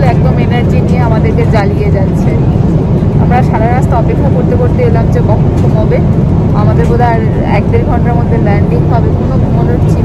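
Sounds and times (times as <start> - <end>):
airliner cabin drone: 0.0 - 10.0.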